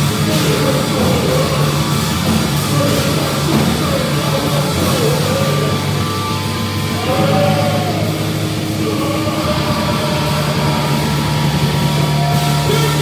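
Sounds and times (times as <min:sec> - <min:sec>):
bass guitar: 0:00.0 - 0:13.0
distorted electric guitar: 0:00.0 - 0:13.0
person singing: 0:00.0 - 0:13.0.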